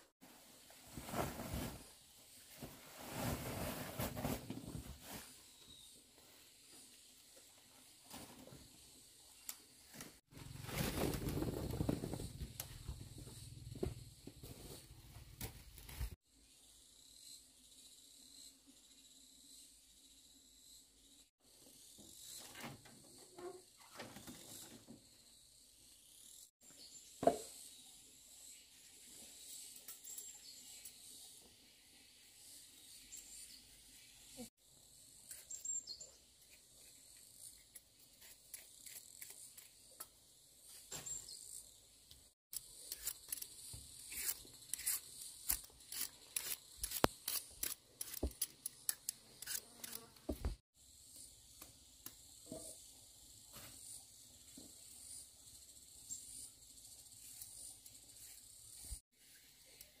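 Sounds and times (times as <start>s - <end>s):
knife cutting and scraping roots: 35.2s - 40.1s, 42.5s - 50.5s.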